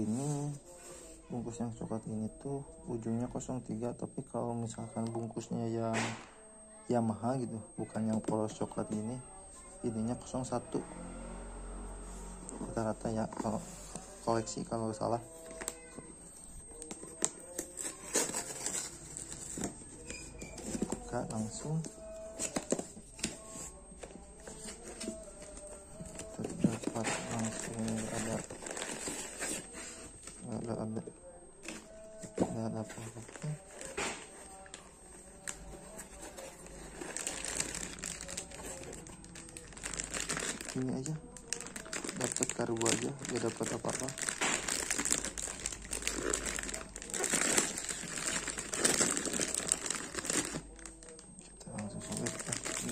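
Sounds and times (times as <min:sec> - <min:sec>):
foam sheet crinkling: 0:12.6 - 0:30.9, 0:31.6 - 0:52.9
plastic bag rustling: 0:12.6 - 0:31.0, 0:31.6 - 0:52.9.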